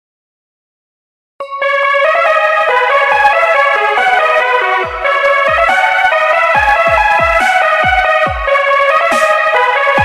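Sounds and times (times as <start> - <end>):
keyboard melody: 1.4 - 10.0.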